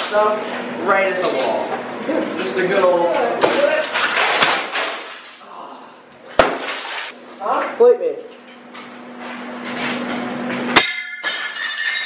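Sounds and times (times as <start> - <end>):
glass smashing: 6.4 - 7.1, 10.8 - 12.0
broken glass clinking: 10.8 - 12.0.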